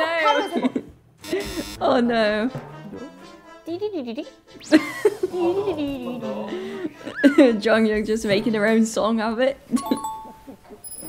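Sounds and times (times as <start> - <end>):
background music: 1.5 - 8.9
voices laughing and talking: 3.8 - 7.9.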